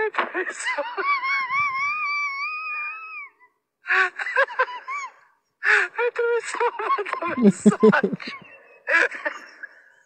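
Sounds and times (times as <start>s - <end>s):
high-pitched wavering laughter: 7.2s - 9.7s.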